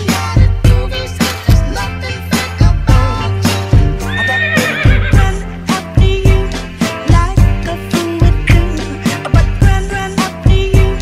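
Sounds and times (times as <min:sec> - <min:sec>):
background music with steady beat: 0:00.0 - 0:11.0
horse whinny: 0:04.0 - 0:05.3.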